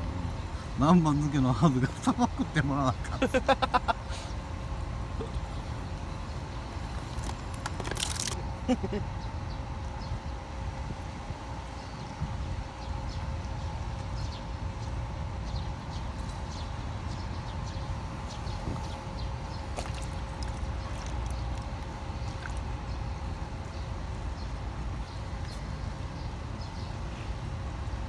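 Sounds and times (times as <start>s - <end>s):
steady mechanical hum: 0.0s - 28.0s.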